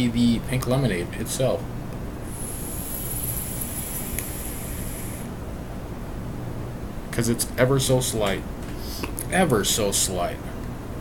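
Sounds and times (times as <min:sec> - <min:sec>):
electronic cigarette hiss: 0:02.2 - 0:05.3.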